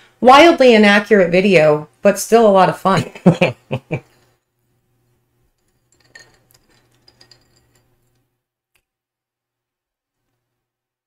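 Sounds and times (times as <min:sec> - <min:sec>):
low room hum: 0:00.0 - 0:08.5
drinking glasses clinking: 0:05.6 - 0:07.9.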